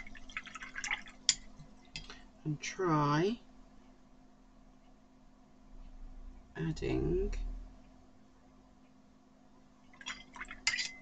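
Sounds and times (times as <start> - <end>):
brush clicking and scraping in palette: 1.3 - 2.2
ceramic clink: 10.0 - 11.0.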